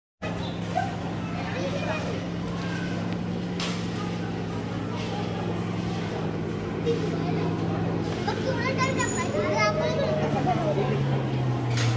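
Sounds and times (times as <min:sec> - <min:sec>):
steady low hum: 0:00.2 - 0:11.8
indistinct voices: 0:00.2 - 0:11.9.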